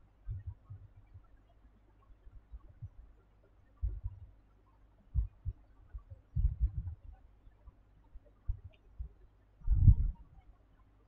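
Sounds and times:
low muffled thumps: 0:00.3 - 0:00.9, 0:03.8 - 0:04.2, 0:05.2 - 0:07.1, 0:08.5 - 0:10.2.

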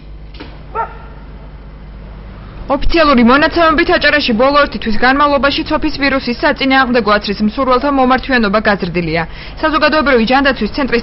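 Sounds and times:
low steady hum: 0:00.0 - 0:11.0
dog barking: 0:00.7 - 0:01.3.

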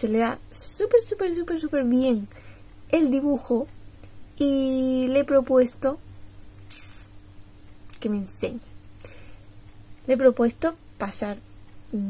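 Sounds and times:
faint steady hum: 0:00.0 - 0:12.0
quick breath hiss: 0:06.6 - 0:07.1, 0:09.0 - 0:09.5.

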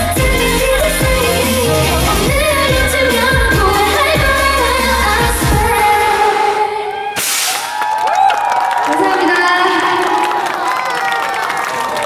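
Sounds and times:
pop beat and bass: 0:00.0 - 0:06.4
woman singing: 0:00.0 - 0:07.0.

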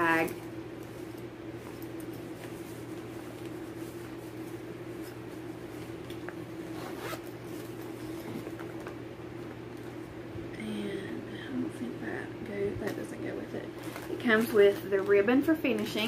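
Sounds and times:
steady low hum: 0:00.0 - 0:16.0
zipper opening: 0:06.6 - 0:08.4.

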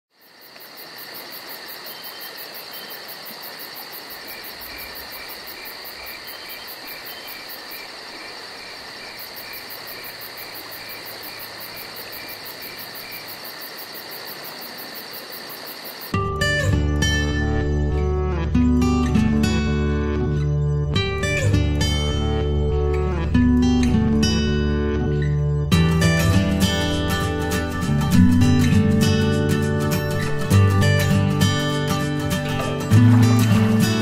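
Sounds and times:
crickets and insects chorus: 0:00.1 - 0:16.2, 0:28.8 - 0:34.0.

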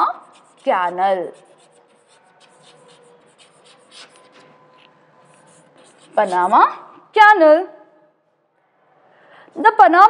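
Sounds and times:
chalk scratching on chalkboard: 0:00.0 - 0:07.0.

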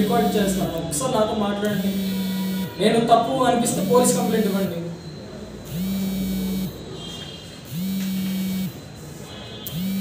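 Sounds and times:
low electronic buzzing tone: 0:01.7 - 0:02.8, 0:03.7 - 0:10.0.

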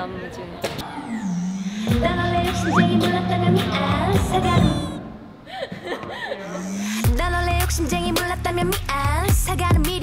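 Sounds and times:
pop music: 0:00.8 - 0:05.2, 0:06.6 - 0:10.0
drawn-out rising voiced tone: 0:00.9 - 0:03.3.

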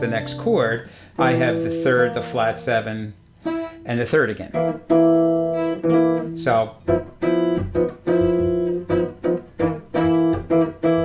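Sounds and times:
jazz guitar chords: 0:00.0 - 0:11.0.

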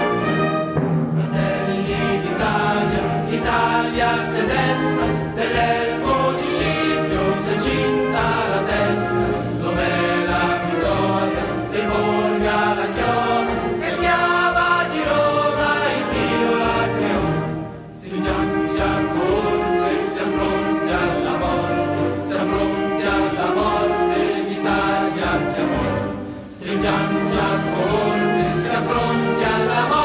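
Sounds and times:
choir singing: 0:00.0 - 0:30.0
orchestral accompaniment: 0:00.0 - 0:30.0.

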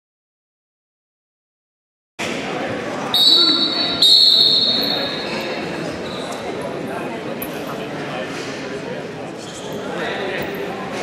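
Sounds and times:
murmur of voices in a hall: 0:02.2 - 0:11.0
referee's whistle blast: 0:03.1 - 0:05.4.

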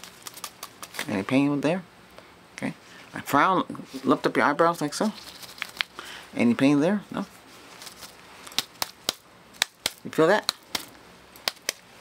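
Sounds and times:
sharp clicks from gloved hands: 0:08.5 - 0:11.8.

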